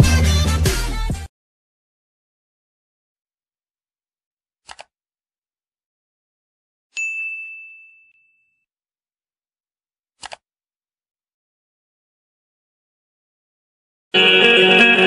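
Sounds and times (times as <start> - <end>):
notification bell ding: 7.0 - 8.3.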